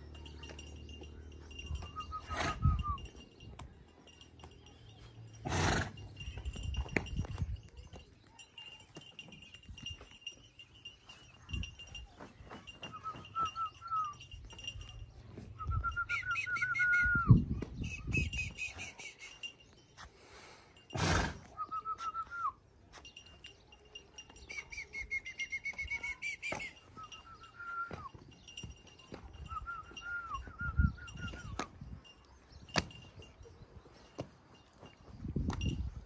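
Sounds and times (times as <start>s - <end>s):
faint steady high tone: 6.4s - 16.8s.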